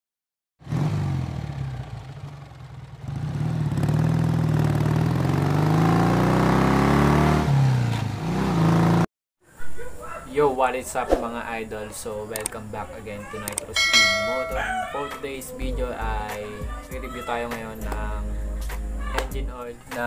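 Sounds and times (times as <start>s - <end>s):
vehicle engine revving: 0.6s - 9.0s.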